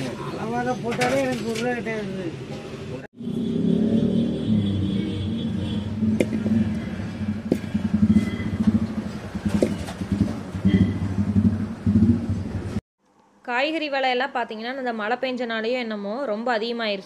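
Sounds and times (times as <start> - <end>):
engine rumble: 2.9 - 12.8.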